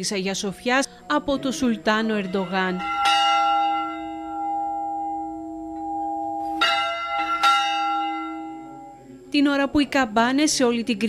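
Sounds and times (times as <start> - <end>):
church bell tolling: 0.6 - 9.3.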